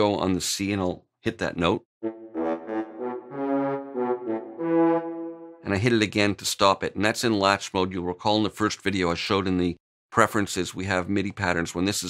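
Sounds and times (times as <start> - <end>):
french horns playing staccato: 2.0 - 5.7.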